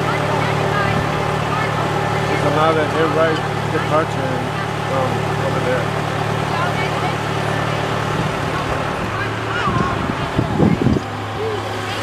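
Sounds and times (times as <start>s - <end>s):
faint voices: 0.0s - 12.0s
vehicle engine droning: 0.0s - 12.0s.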